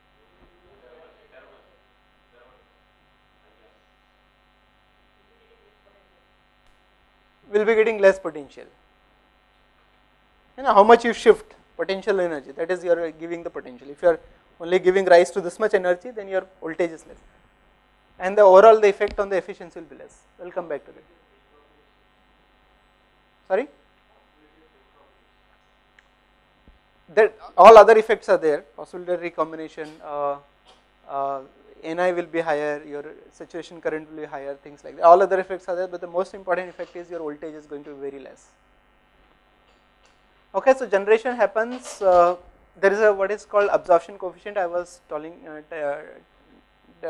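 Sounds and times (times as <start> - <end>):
mains hum: 0.0 - 47.0.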